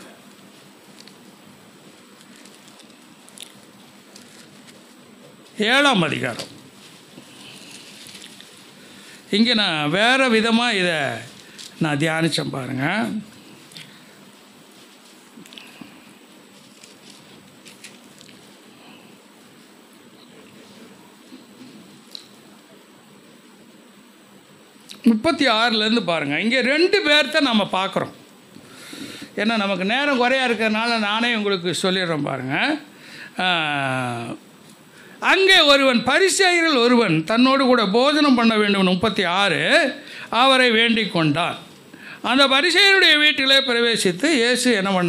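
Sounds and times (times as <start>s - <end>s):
faint microphone hiss: 0.0s - 45.0s
faint rustles: 0.4s - 5.6s, 6.4s - 9.1s, 13.5s - 22.2s
small faint click: 22.1s - 22.3s.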